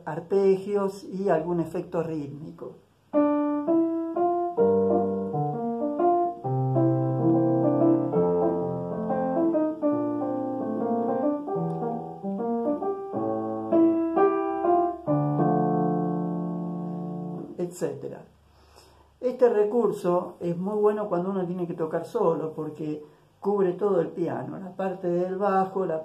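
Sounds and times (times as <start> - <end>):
digital piano jazz playing: 0.0 - 18.2.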